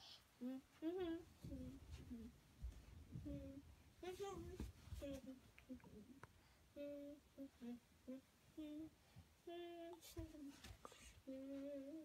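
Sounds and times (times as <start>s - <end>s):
girl humming: 9.5s - 10.5s, 11.3s - 12.0s.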